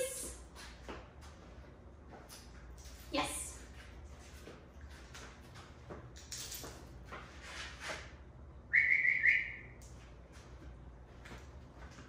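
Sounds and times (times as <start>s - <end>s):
flip-flop footsteps on rubber floor: 0.2s - 2.7s
high whistle-like tone: 8.7s - 9.8s.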